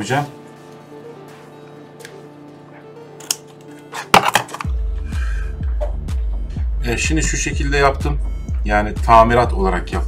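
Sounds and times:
background music: 0:00.0 - 0:10.0
heavy pulsing bass beat: 0:04.7 - 0:10.0.

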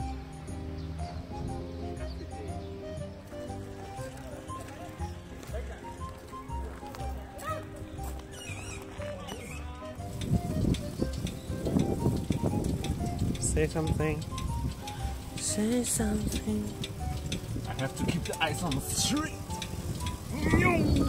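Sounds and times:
background music with steady beat: 0:00.0 - 0:21.0.

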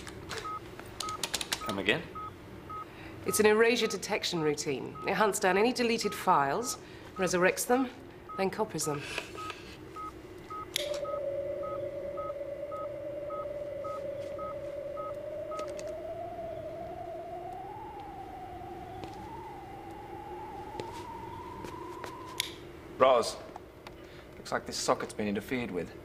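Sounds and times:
rising wobbling electronic tone: 0:10.8 - 0:22.8.

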